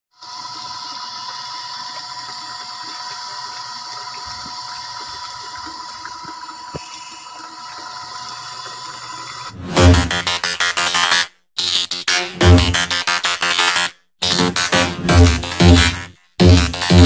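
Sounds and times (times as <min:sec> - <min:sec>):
water pouring into drum: 0:00.2 - 0:09.6
pump humming: 0:00.2 - 0:10.3.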